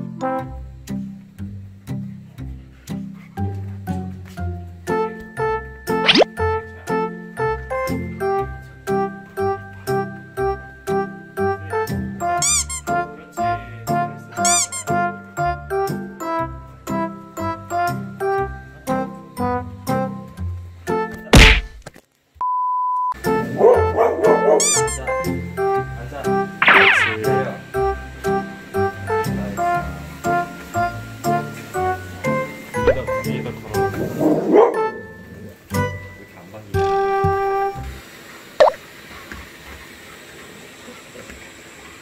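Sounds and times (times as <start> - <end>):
whoosh sound effect: 6.1 - 6.3, 26.6 - 27.2
beep tone: 22.4 - 23.2
piano music: 23.2 - 37.9.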